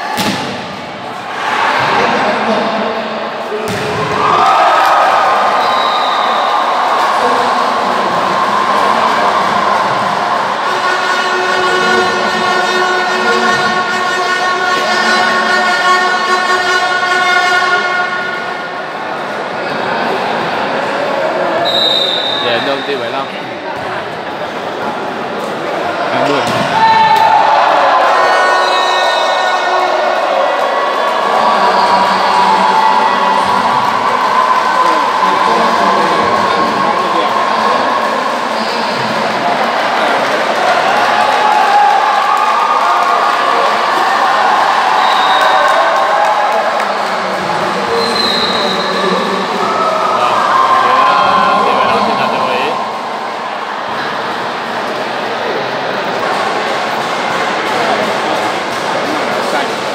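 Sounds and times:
crowd voices: 0.0s - 59.9s
ball hit and bouncing on court: 0.1s - 0.9s, 3.6s - 4.3s, 26.4s - 27.3s
long horn-like tones: 10.5s - 19.0s.

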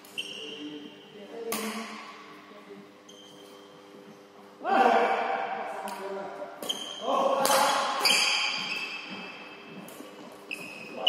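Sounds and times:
sneakers squeaking on floor: 0.0s - 1.2s, 3.0s - 4.3s, 6.6s - 11.0s
racket hitting shuttlecock: 1.5s - 2.2s, 6.6s - 10.0s.

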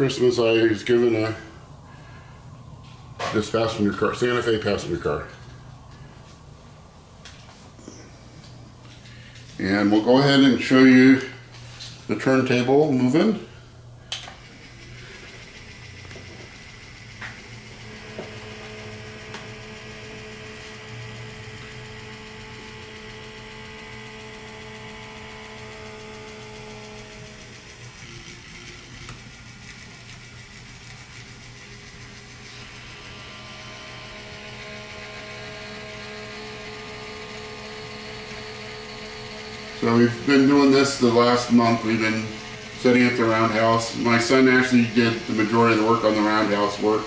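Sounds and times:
motor and gear hum: 0.0s - 47.0s.

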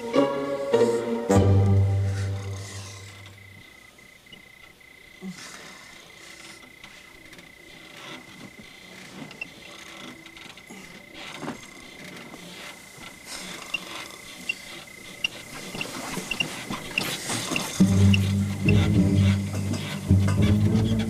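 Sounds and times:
wooden house creaking and knocking: 6.6s - 21.0s.

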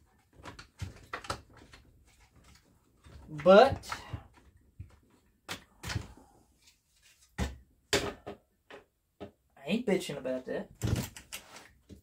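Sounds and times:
plastic clacks and knocks: 0.0s - 6.2s, 7.4s - 9.4s, 10.8s - 12.0s.

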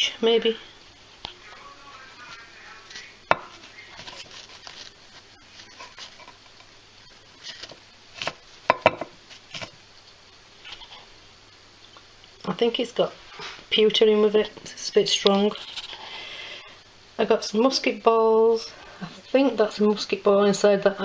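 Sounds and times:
paper rustling: 2.2s - 6.6s, 7.4s - 8.5s.

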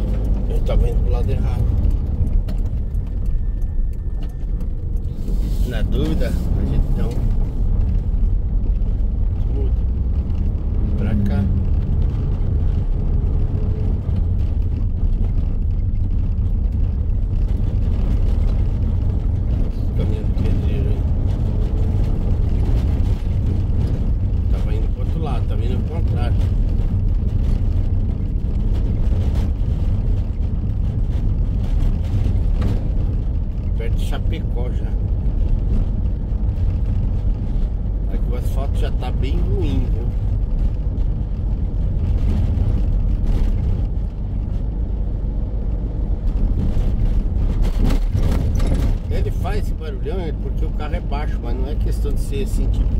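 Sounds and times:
van engine and tyres rumbling: 0.0s - 52.9s.

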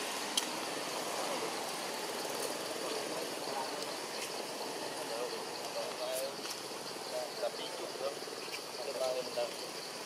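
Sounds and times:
forest background noise: 0.0s - 10.0s
high insect drone: 0.0s - 10.0s.

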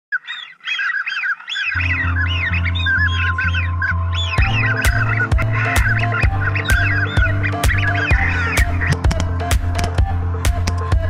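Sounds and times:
high arched bird calls: 0.1s - 9.0s
music with steady bass beat: 2.9s - 11.0s.

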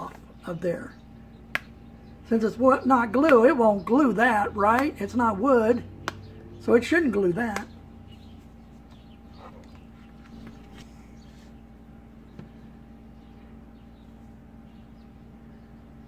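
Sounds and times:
steady low hum: 0.0s - 16.0s
faint handling sounds: 8.4s - 11.7s.

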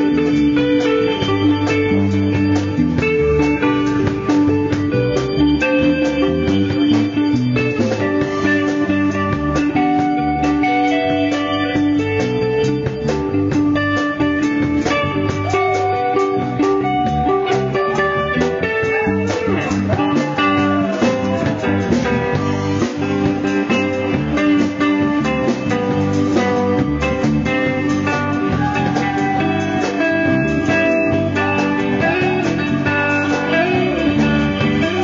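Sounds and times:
electric guitar bending notes: 0.0s - 35.0s
live band playing: 0.0s - 35.0s.

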